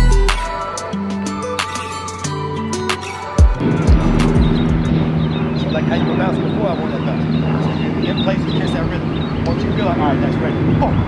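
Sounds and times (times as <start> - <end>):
low mechanical drone: 3.6 - 11.0
faint voices: 5.5 - 11.0.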